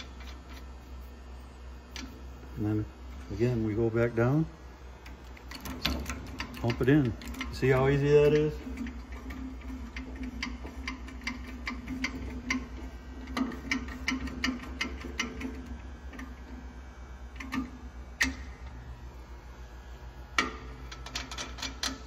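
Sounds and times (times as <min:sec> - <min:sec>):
faint steady hum: 0:00.0 - 0:22.0
hydraulic hand pump clicking: 0:05.0 - 0:16.4.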